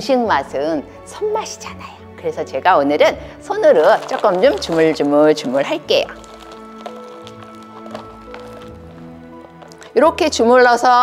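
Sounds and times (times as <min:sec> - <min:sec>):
soft background music: 0:00.0 - 0:11.0
hands kneading rice: 0:03.8 - 0:09.9.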